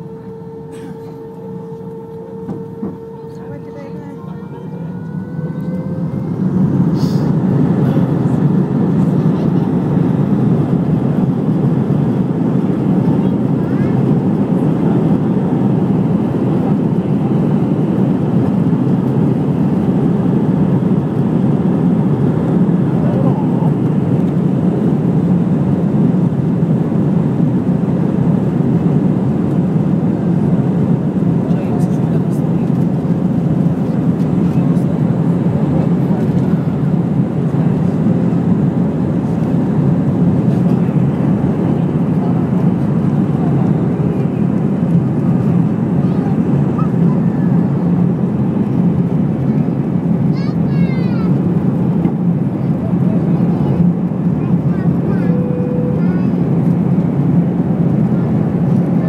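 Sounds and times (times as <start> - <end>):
jet engines roaring from cabin: 0.0 - 59.0.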